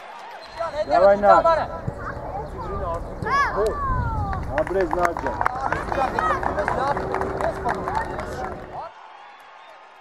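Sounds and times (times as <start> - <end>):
wind rumble on microphone: 1.6 - 8.8.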